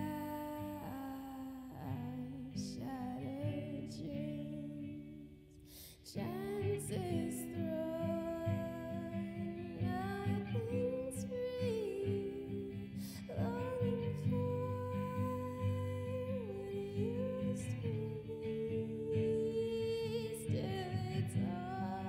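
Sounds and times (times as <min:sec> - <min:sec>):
strummed guitar: 0:00.0 - 0:22.0
woman singing long notes: 0:06.1 - 0:22.0.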